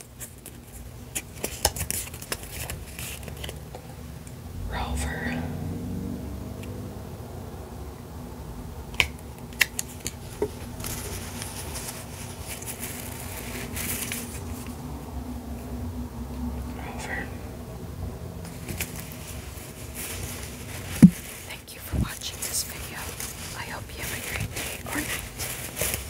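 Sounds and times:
soft whispering: 4.6s - 5.8s, 16.5s - 17.7s, 21.3s - 25.5s
plush toy rubbing and rustling: 9.8s - 14.8s, 18.4s - 26.0s.

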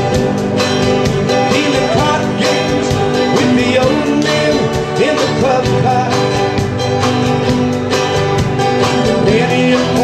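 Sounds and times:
drum kit beat: 0.0s - 10.0s
live country band playing: 0.0s - 10.0s.

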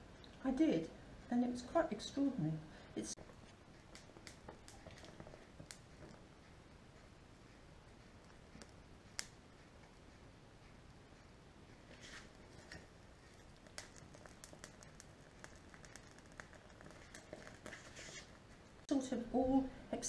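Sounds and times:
faint fire crackling: 0.0s - 20.0s.

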